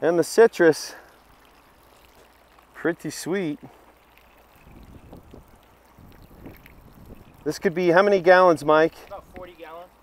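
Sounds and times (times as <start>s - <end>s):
water trickling into basin: 0.0s - 10.0s
wind rumble on microphone: 4.6s - 7.5s.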